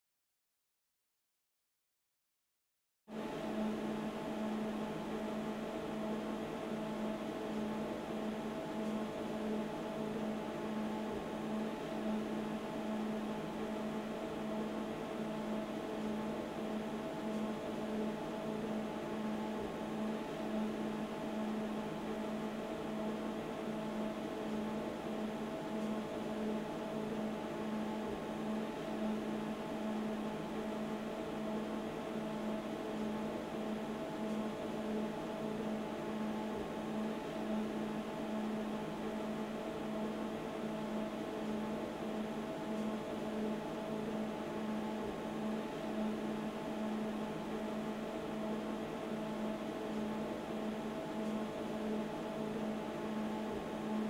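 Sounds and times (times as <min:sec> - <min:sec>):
steady machine hum: 0:03.2 - 0:54.0.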